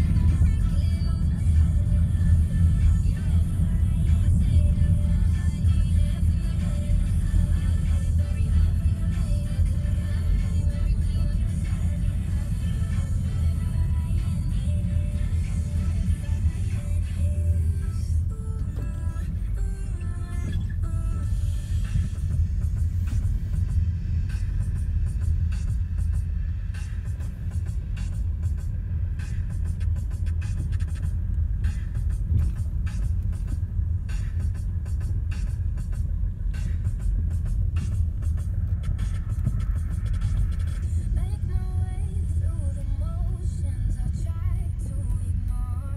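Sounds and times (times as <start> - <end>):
car rumble from inside cabin: 0.0 - 45.9
music playing: 0.0 - 45.9.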